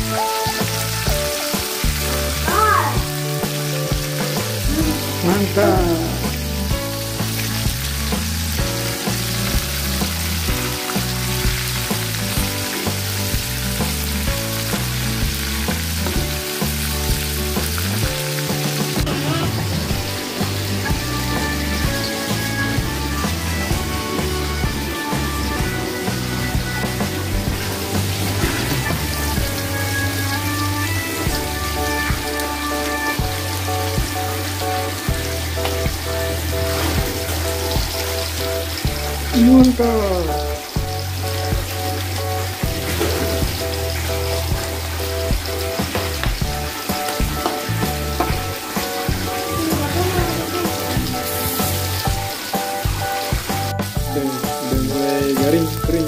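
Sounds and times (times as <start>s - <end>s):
background music with bass line: 0.0s - 56.0s
oil sizzling: 0.0s - 56.0s.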